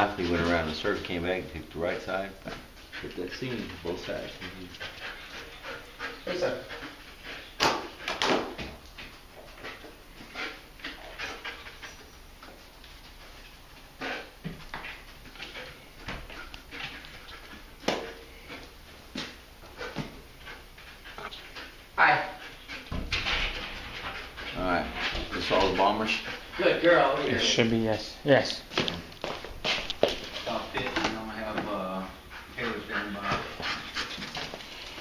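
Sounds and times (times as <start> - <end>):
dog breathing hard and sniffing: 1.9 - 27.6, 31.4 - 35.0.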